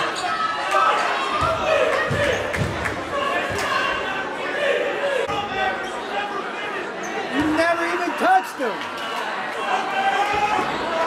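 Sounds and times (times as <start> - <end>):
chatter of players and spectators: 0.0 - 11.0.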